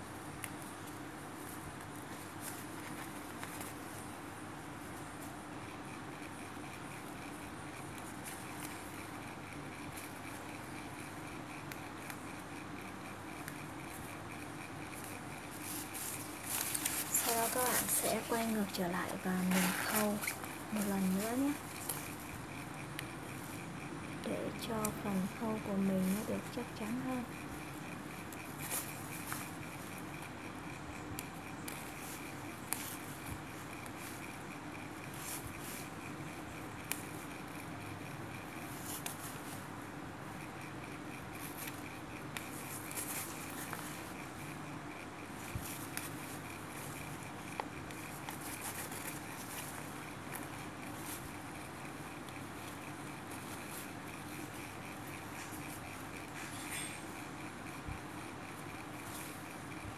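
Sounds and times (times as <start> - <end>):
steady background hum: 0.0 - 59.9
fabric and thread rustling: 15.0 - 22.6.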